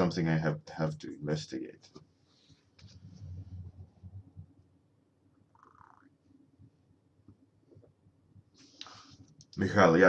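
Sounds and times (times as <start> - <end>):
faint low crackle: 2.4 - 9.6.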